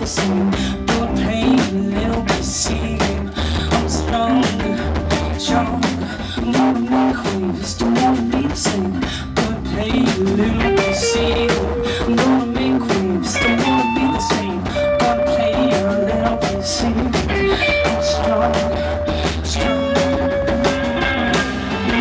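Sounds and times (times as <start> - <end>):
bass guitar: 0.0 - 22.0
electric guitars: 0.0 - 22.0.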